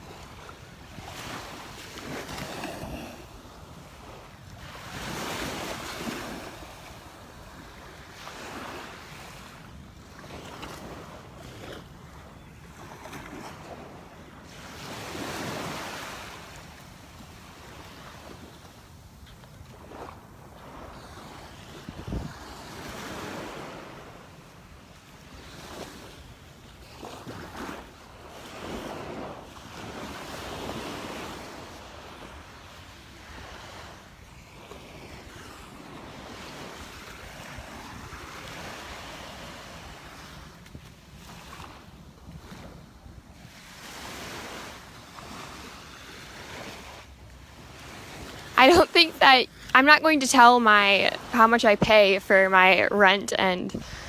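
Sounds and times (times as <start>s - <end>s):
waves breaking on sand: 0.0s - 54.0s
wind on microphone: 19.7s - 23.6s.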